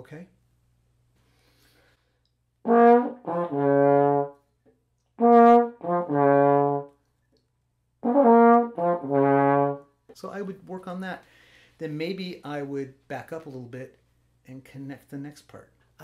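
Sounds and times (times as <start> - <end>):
trombone playing: 2.6 - 4.4, 5.2 - 7.0, 8.0 - 9.9.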